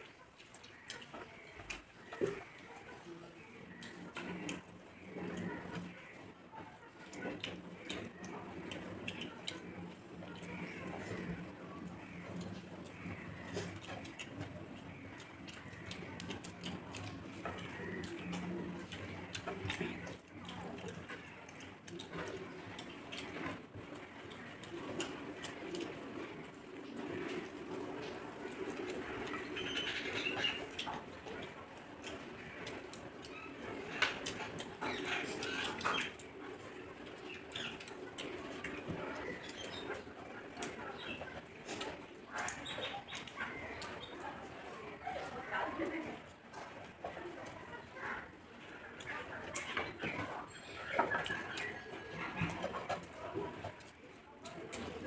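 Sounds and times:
chewing and lip-smacking: 0.0s - 55.0s
fingers mixing rice on clay plates: 0.0s - 55.0s.

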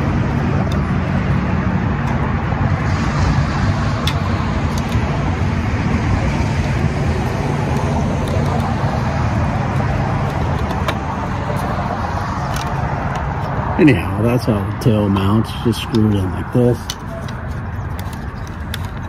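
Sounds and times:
low rumble of motor vehicle: 0.0s - 19.0s.

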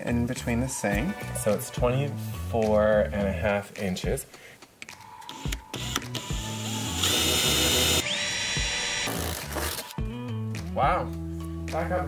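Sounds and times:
drill boring through wood: 5.3s - 9.8s.

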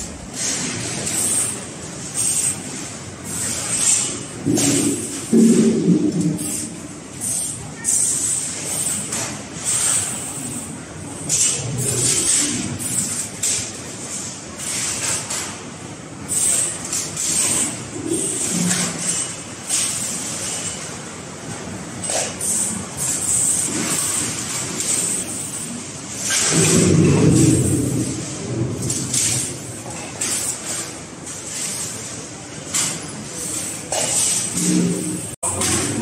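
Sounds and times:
balls rolling on steel tracks: 0.0s - 36.0s
metal balls rolling on steel rails: 16.3s - 21.0s.

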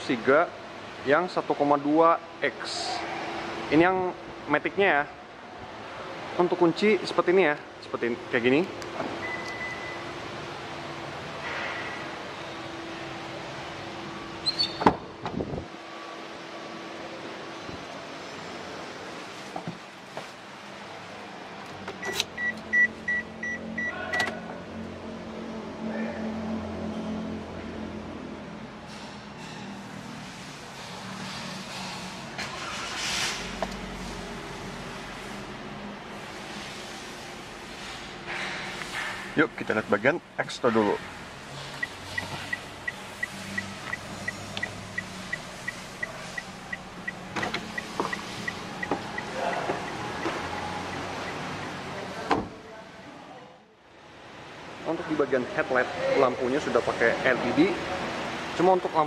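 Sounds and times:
car engine idling: 41.0s - 52.2s
short warning beeps: 41.8s - 51.7s.

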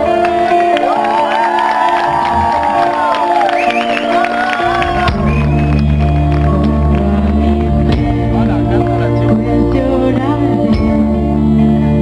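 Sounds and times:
electric guitar lead line: 0.0s - 12.0s
heavy bass notes: 4.4s - 12.0s.

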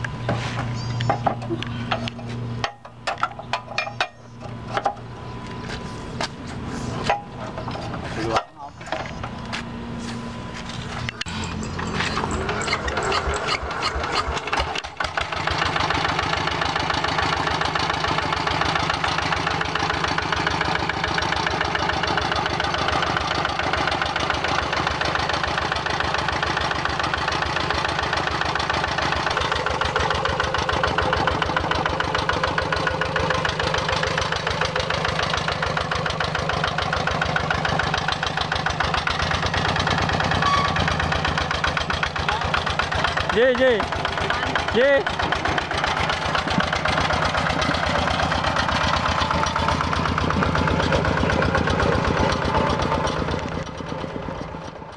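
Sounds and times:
diesel engine starting and idling: 0.0s - 54.9s.

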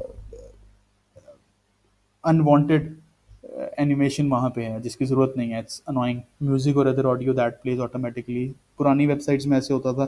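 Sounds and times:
man speaking: 0.0s - 0.5s, 2.2s - 10.0s.

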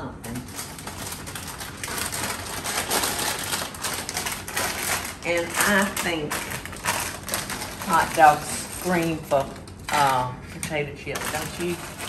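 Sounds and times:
chip bag crinkling: 0.2s - 12.0s.

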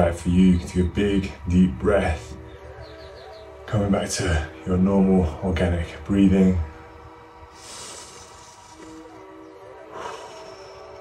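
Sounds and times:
ambient music with held tones: 0.0s - 11.0s
soft breathing: 7.5s - 11.0s.

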